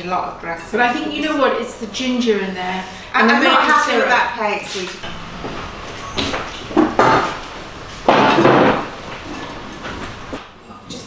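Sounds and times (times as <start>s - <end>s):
dishes knocking on counter: 6.2s - 7.4s, 8.0s - 8.9s.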